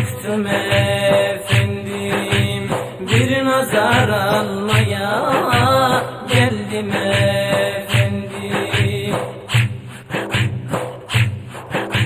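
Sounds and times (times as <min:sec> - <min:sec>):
drum beating: 0:00.0 - 0:12.0.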